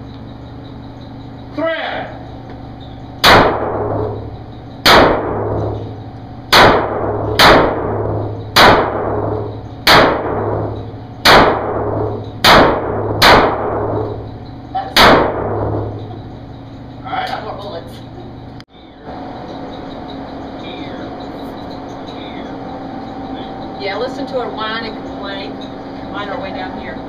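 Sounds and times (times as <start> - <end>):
handgun shots echoing: 4.8 - 5.7, 11.2 - 14.0.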